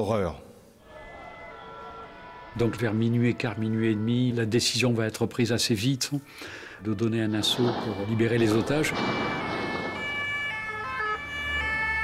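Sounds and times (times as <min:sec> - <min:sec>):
two-tone emergency sirens: 0:07.5 - 0:12.0.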